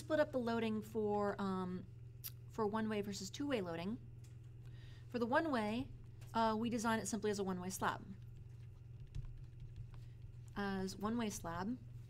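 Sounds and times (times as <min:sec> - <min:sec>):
steady low hum: 0:00.0 - 0:12.0
stylus tapping on tablet screen: 0:08.2 - 0:10.4.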